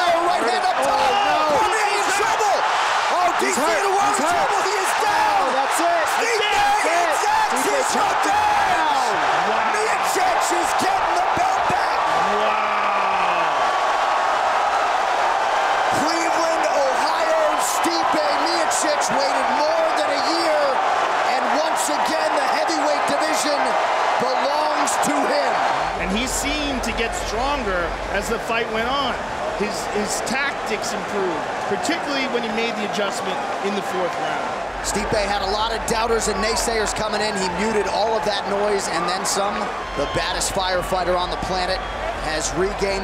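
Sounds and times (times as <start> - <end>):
crowd cheering loudly: 0.0 - 43.0.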